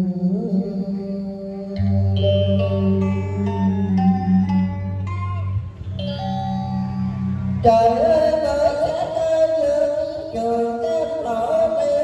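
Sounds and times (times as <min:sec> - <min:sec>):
sustained low tone: 0:00.0 - 0:11.7
plucked guitar-like notes: 0:01.8 - 0:12.0.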